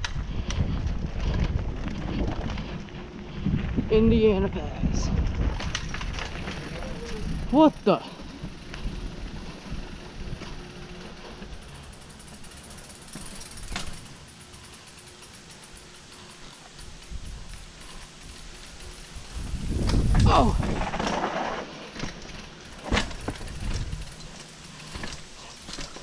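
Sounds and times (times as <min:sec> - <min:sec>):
bike tyre and frame rattling: 0:00.0 - 0:26.0
freehub ticking: 0:05.5 - 0:20.1, 0:21.9 - 0:26.0.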